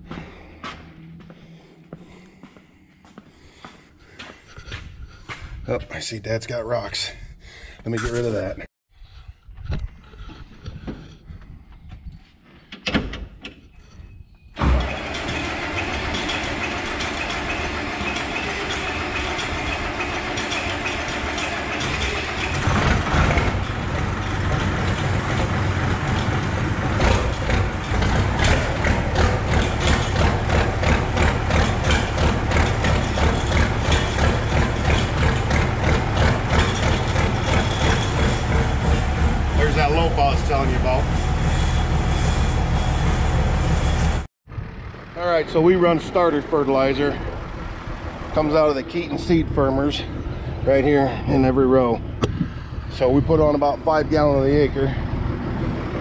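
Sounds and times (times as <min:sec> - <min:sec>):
diesel tractor engine running: 0:14.6 - 0:56.0.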